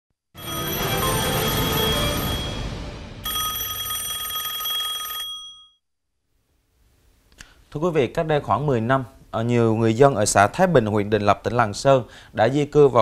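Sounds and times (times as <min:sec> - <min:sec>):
news jingle music: 0:00.4 - 0:04.7
fluttering telephone ringing tone: 0:00.4 - 0:05.8.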